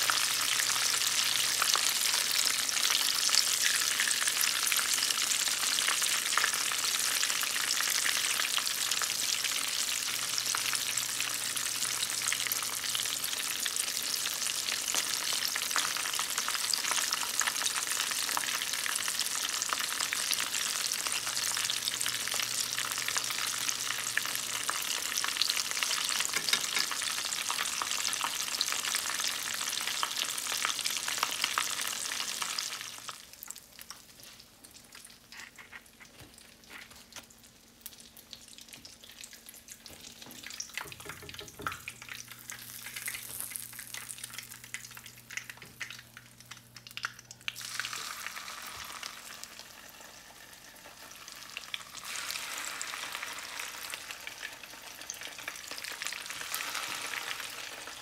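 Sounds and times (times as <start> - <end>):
spring rolls frying in oil: 0.0 - 58.0.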